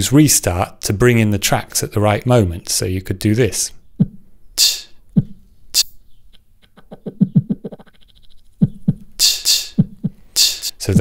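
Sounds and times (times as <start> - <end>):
looped beatbox vocal percussion: 4.0 - 5.9, 6.6 - 11.0.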